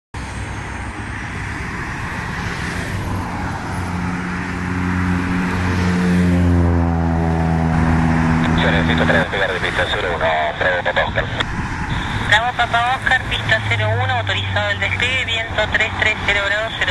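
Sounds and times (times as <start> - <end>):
jet engines taxiing: 0.2 - 16.9
deep steady hum: 3.9 - 16.9.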